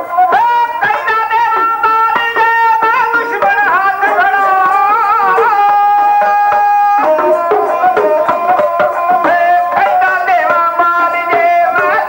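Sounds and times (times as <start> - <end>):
sarangi: 0.0 - 12.0
hand drums struck quickly: 0.4 - 12.0.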